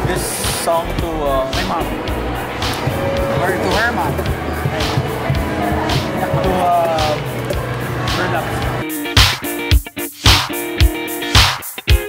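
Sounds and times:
indistinct voices: 0.0s - 8.8s
background music with held notes: 0.0s - 12.0s
music with steady beat: 0.0s - 12.0s.

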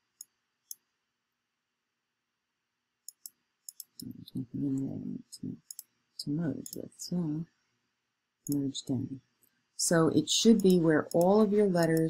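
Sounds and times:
computer mouse clicks: 3.0s - 4.2s, 5.6s - 5.9s, 10.5s - 12.0s
person talking: 4.0s - 5.6s, 6.2s - 7.4s, 8.5s - 9.2s, 9.8s - 12.0s.

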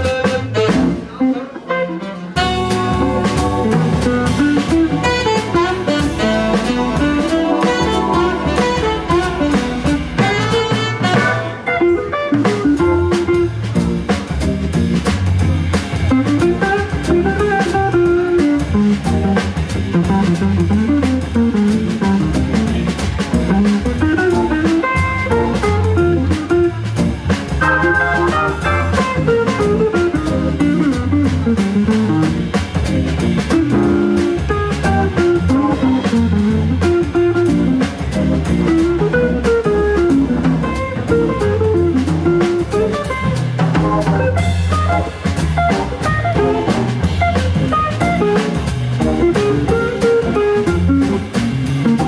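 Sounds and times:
drum kit beat: 0.0s - 52.0s
electric guitar: 0.0s - 52.0s
organ bass line: 2.4s - 52.0s.

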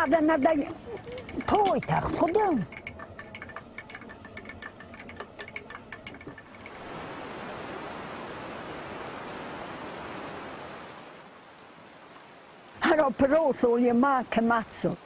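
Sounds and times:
fast-flowing river water: 5.5s - 15.0s.

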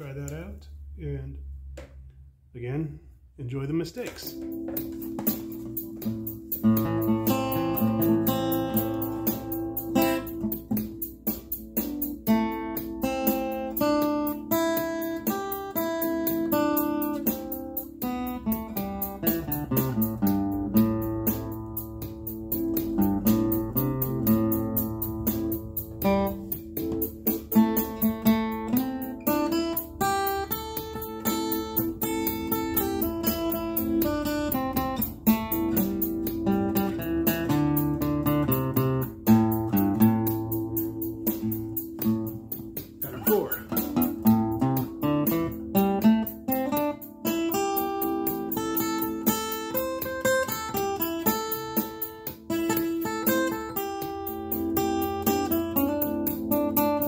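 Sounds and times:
backing track with held chords: 3.7s - 57.0s
acoustic guitar picking notes: 4.0s - 57.0s.

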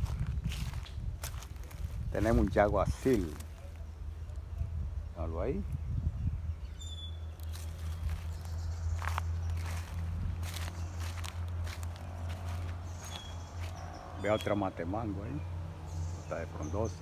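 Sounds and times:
footsteps on grass and dry leaves: 0.0s - 4.5s, 7.2s - 15.2s
low rumble: 0.0s - 14.2s.

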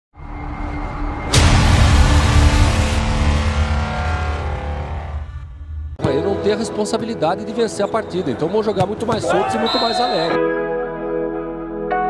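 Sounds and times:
deep rumbling boom: 0.2s - 6.0s.

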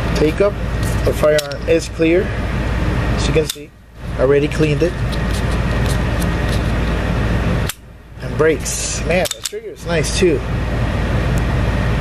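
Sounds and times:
hiss with low hum: 0.0s - 12.0s.

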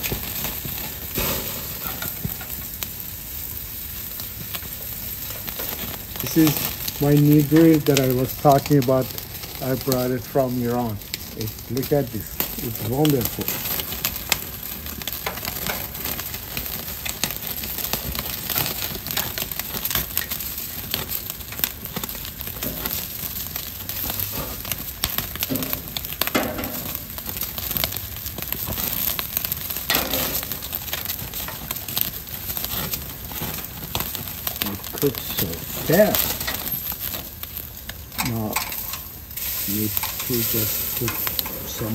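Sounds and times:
fat crackling on coals: 0.0s - 41.9s
meat sizzling over charcoal: 0.0s - 41.9s
metal skewers clinking: 38.2s - 39.1s, 39.7s - 41.9s.

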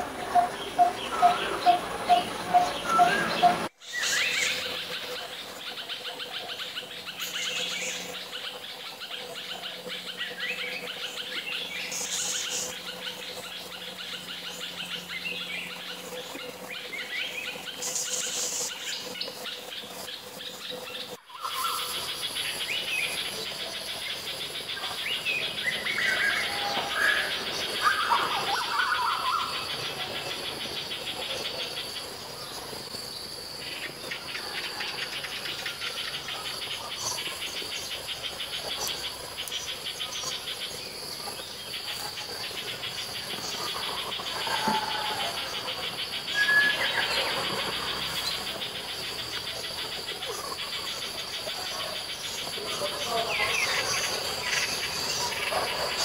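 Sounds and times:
insects droning: 0.0s - 56.0s
small birds calling: 0.0s - 56.0s.

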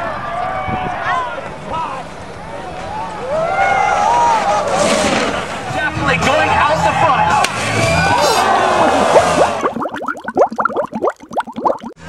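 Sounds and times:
water bubbling in short plops: 9.0s - 12.0s.

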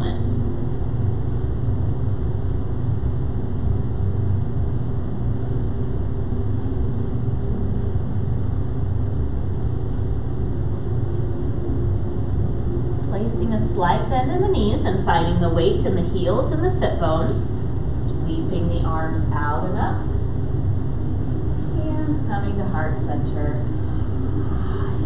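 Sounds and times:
low rumble: 0.0s - 25.0s.

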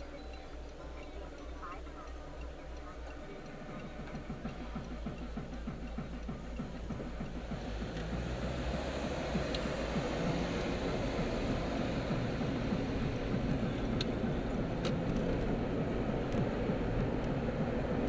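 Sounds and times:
car engine and road noise: 0.0s - 18.0s
faint sharp ticks: 0.0s - 18.0s.

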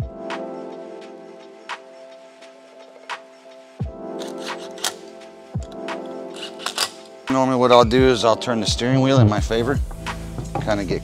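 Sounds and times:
held music chords: 7.9s - 11.0s
deep drum hits: 9.1s - 10.8s.

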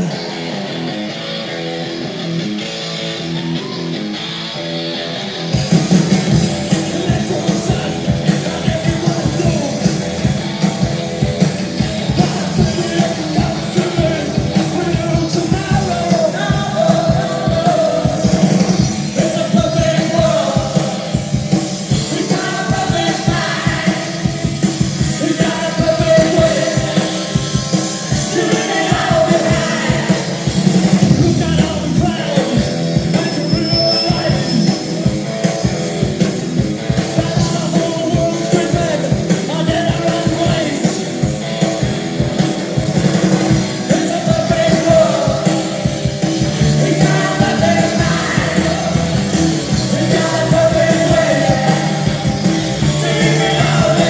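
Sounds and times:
rock band playing: 0.0s - 54.0s
fast drum beat: 5.5s - 54.0s
person singing: 6.3s - 10.9s, 12.0s - 21.3s, 21.9s - 27.4s, 28.0s - 34.6s, 37.0s - 42.0s, 43.8s - 46.0s, 46.6s - 54.0s.

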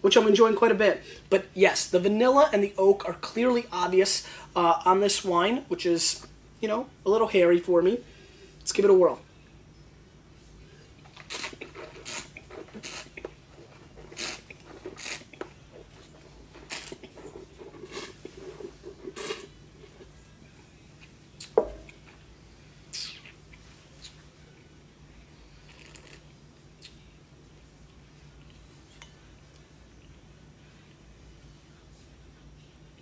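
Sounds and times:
wet slurps and mouth smacks: 11.2s - 16.0s, 16.6s - 18.4s.

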